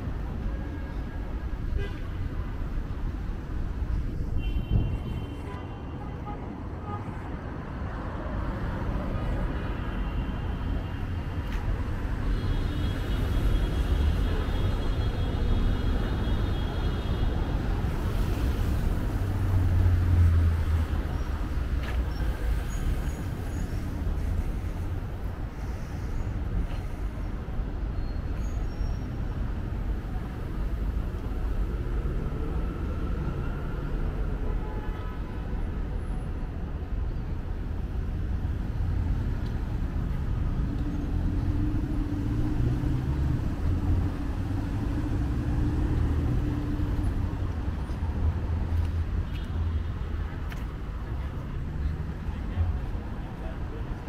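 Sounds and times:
street traffic passing: 0.0 - 54.0.

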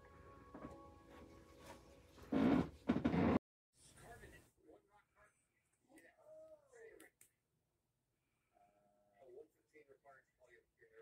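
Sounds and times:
faint music with held notes: 0.0 - 2.6.

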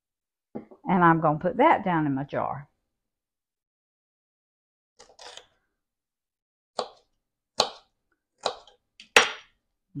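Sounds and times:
knife scraping cutting board: 5.0 - 5.6.

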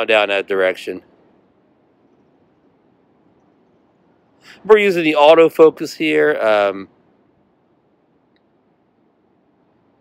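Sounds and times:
faint recording hiss: 0.0 - 10.0.

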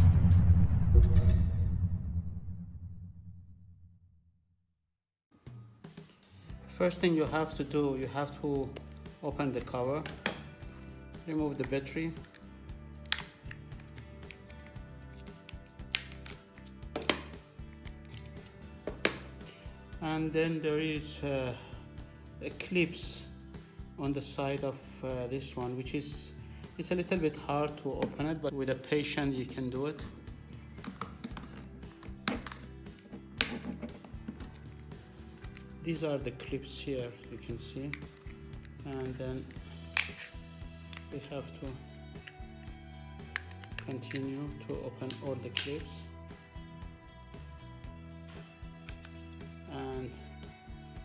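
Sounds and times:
quiet background music: 5.4 - 51.0.

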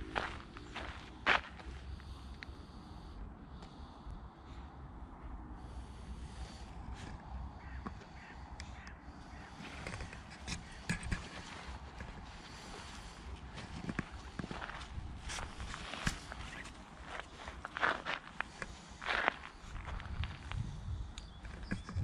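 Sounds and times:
footsteps crunching on gravel: 0.0 - 1.8, 10.7 - 20.6
wind rumble on microphone: 9.3 - 18.2, 19.0 - 22.0.

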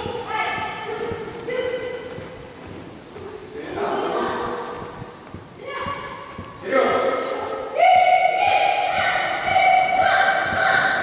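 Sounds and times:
children calling out together: 7.5 - 11.0.

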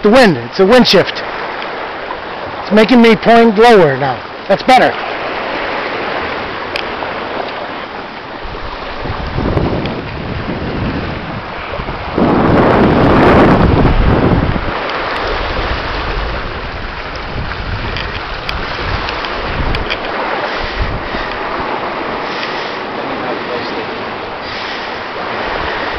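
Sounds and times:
water rushing along hull: 0.0 - 25.9
wind buffeting microphone: 4.2 - 25.9.

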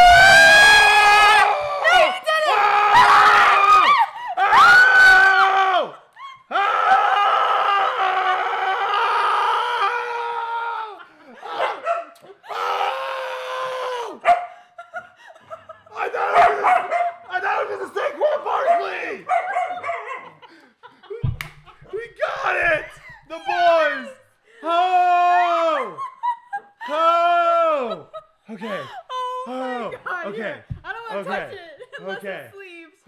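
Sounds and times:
people screaming in excitement: 0.0 - 11.7, 12.4 - 14.2, 22.3 - 28.2.

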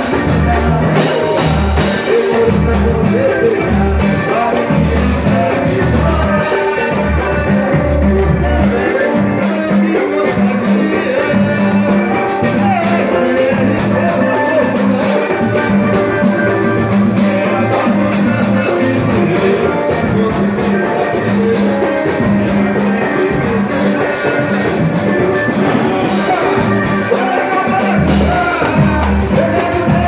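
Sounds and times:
samba on strummed guitars: 0.0 - 30.0.

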